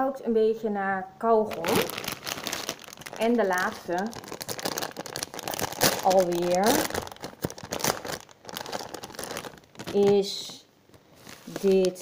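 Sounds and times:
plastic bag crinkling: 1.5 - 12.0.

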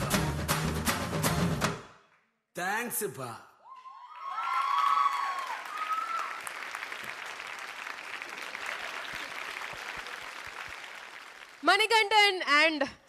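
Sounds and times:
audience applauding: 3.8 - 12.2.

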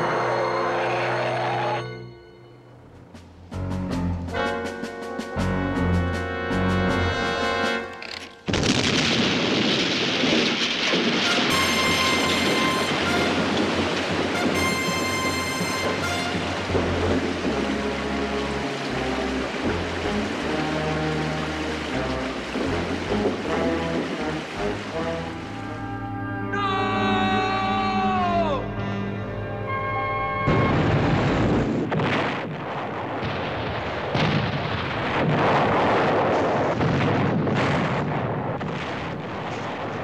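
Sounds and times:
dramatic music: 0.0 - 8.2, 11.2 - 31.8
rushing water: 5.8 - 40.0
loud explosion: 8.5 - 15.2, 30.5 - 40.0.

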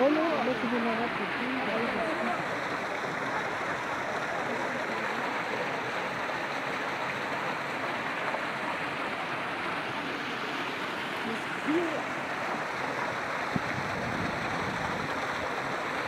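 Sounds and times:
water splashing over rocks: 0.0 - 16.0.

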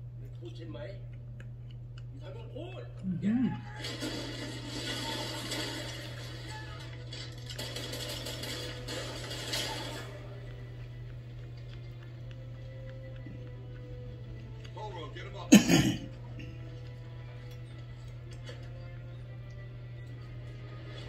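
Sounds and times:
steady low hum: 0.0 - 21.0
background music: 2.2 - 21.0.

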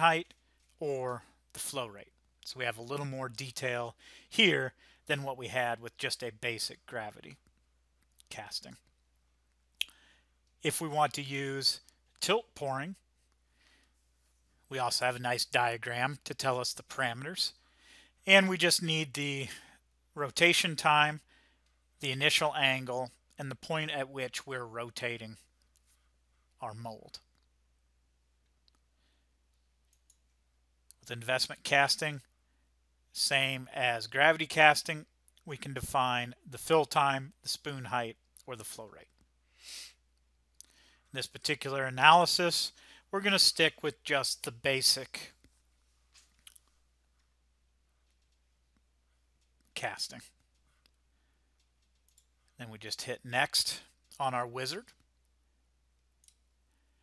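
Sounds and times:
faint steady low hum: 0.0 - 57.0
computer mouse clicks: 29.5 - 30.3, 51.6 - 52.5
computer mouse click: 29.9 - 30.3.

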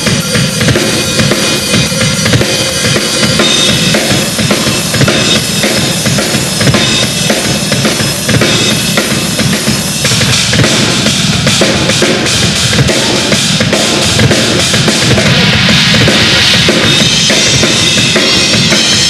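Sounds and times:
cymbal strokes: 0.0 - 19.0
drum kit played fast: 0.0 - 19.0.

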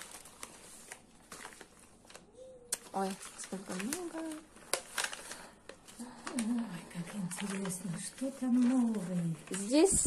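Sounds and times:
plastic bag and paper crinkling: 0.0 - 10.0.

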